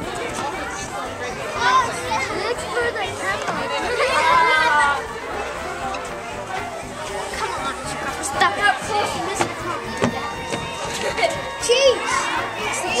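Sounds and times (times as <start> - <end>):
children talking and calling out: 0.0 - 13.0
music playing: 0.0 - 13.0.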